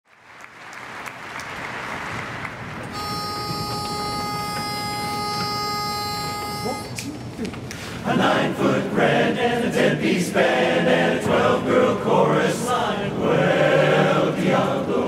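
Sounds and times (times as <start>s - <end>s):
pitch pipe note: 2.9s - 7.1s
crowd murmur: 3.0s - 8.6s.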